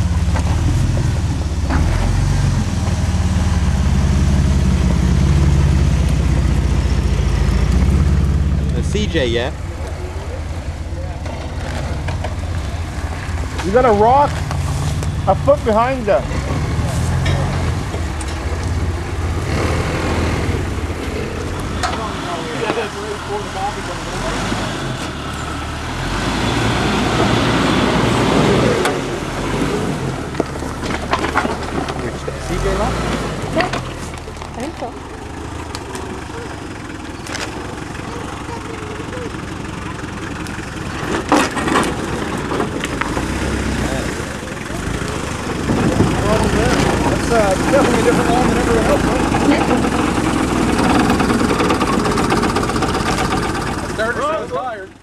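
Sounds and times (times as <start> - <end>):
off-road engines at low revs: 0.0 - 55.0
people talking indistinctly: 8.7 - 18.6, 20.1 - 24.8, 31.9 - 35.2, 37.5 - 40.2, 43.6 - 55.0.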